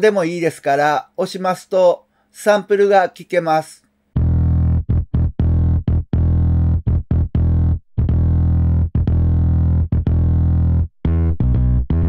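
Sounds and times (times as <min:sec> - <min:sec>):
electric bass line: 0:04.2 - 0:12.0.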